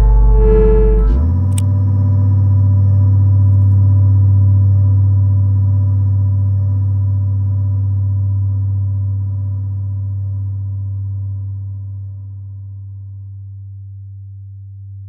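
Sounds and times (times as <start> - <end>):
faint high tones: 0.0 - 1.6
low electronic drone: 0.0 - 13.6.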